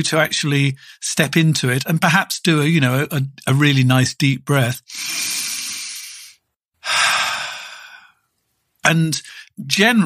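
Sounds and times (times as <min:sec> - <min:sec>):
man breathing in deeply: 0:04.9 - 0:08.2
man breathing out: 0:04.9 - 0:08.2.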